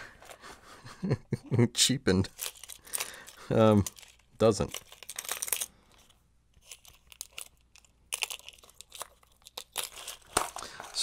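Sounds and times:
crinkly crackling: 2.2s - 11.0s.

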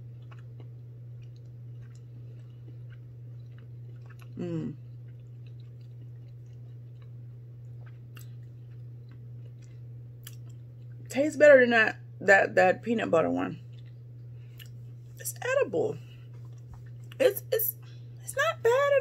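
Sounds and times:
person chewing cookie: 0.0s - 11.1s, 13.6s - 15.2s, 16.2s - 17.2s
steady low hum: 0.0s - 19.0s
person humming mm: 4.4s - 4.8s.

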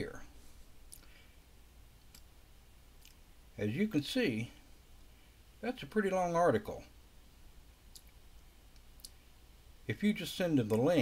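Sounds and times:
low steady hum: 0.0s - 11.0s
computer mouse clicks: 7.9s - 9.2s.

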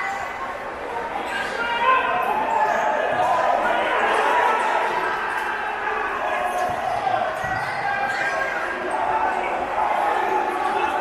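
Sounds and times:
spectators shouting in hall: 0.0s - 11.0s.

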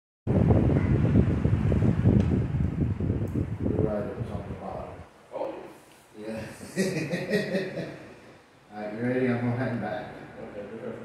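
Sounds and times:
wind buffeting microphone: 0.3s - 5.1s.

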